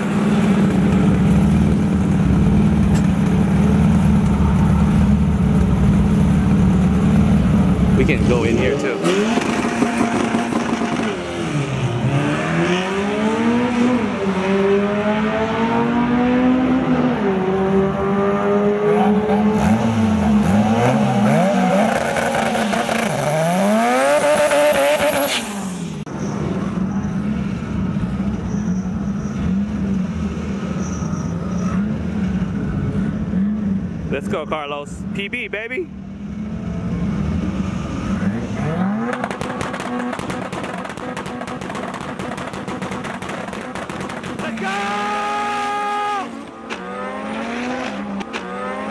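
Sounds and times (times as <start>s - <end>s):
drag car engine revving: 0.2s - 26.0s, 37.1s - 48.9s.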